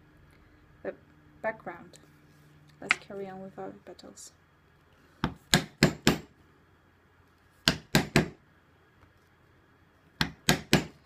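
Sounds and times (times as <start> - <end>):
mallet knocking tool on leather: 10.2 - 11.0.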